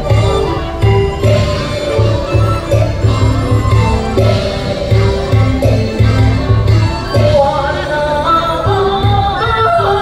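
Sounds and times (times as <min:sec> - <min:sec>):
instrumental accompaniment with low beats: 0:00.0 - 0:10.0
woman singing opera: 0:07.1 - 0:10.0.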